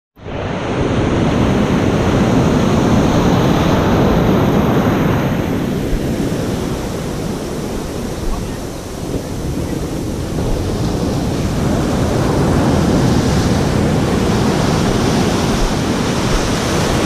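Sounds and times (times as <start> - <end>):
surf breaking on beach: 0.2 - 17.0.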